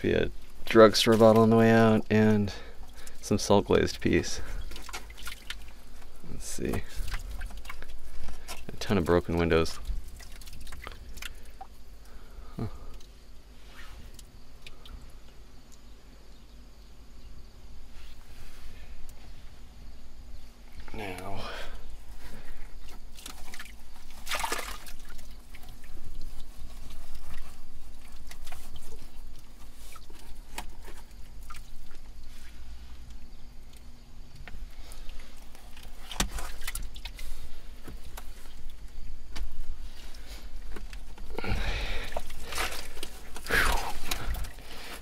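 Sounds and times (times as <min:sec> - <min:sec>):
hands digging in wet mud: 0:20.7 - 0:33.1, 0:39.8 - 0:45.0.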